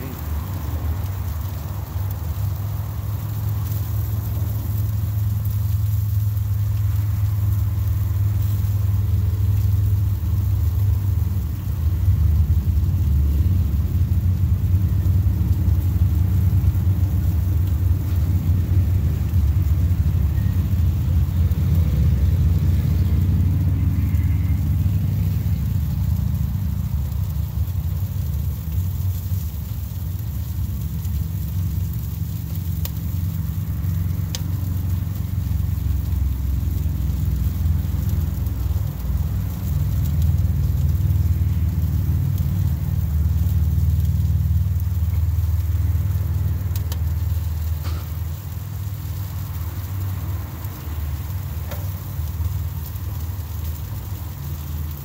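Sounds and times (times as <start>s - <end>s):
loud low rumble: 0.0s - 52.8s.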